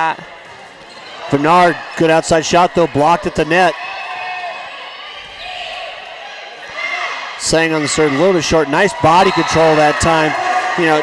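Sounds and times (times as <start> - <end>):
sneaker squeaks: 0.3 - 2.0.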